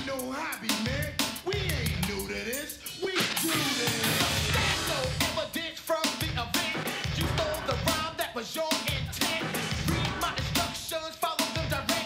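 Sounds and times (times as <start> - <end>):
song with heavy drum beat: 0.0 - 12.0.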